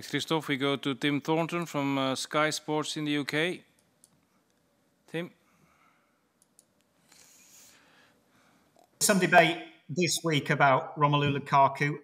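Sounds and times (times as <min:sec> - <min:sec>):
faint hiss: 0:07.0 - 0:10.5.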